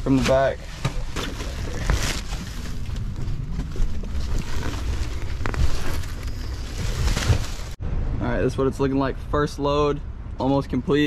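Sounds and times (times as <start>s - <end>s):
plastic garbage bags rustling: 0.0s - 7.8s
low rumble: 0.7s - 10.4s.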